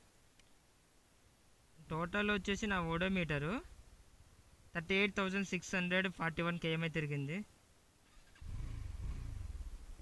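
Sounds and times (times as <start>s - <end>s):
motorcycle engine rumble: 7.5s - 10.0s.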